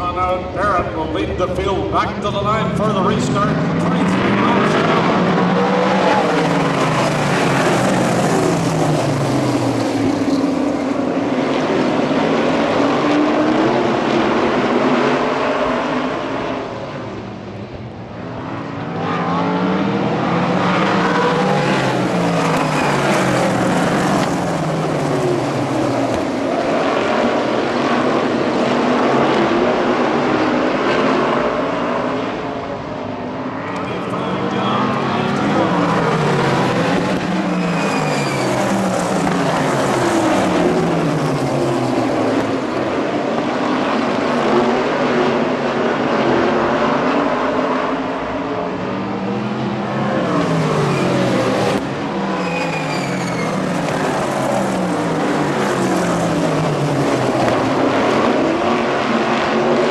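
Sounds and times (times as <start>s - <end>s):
sprint car engines racing: 0.0s - 59.9s.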